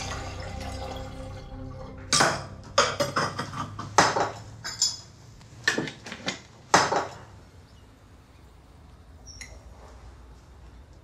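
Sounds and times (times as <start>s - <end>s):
metal and glass kitchenware clinking: 2.1s - 5.2s.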